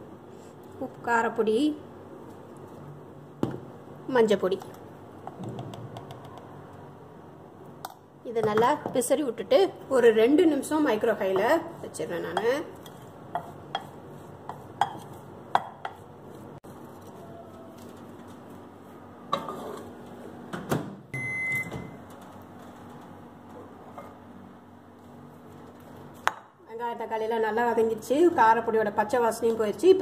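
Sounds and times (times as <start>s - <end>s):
spoon scraping glass bowl: 12.4s - 15.3s
microwave beep: 21.1s - 22.0s.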